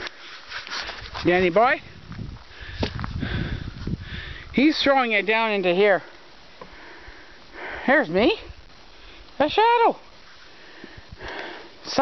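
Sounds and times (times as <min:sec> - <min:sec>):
person inhaling: 0:02.5 - 0:04.5, 0:06.6 - 0:07.9, 0:10.5 - 0:11.8.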